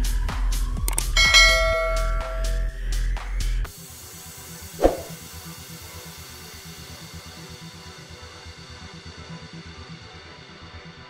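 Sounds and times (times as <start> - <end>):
bright bell chime: 1.2 - 2.8.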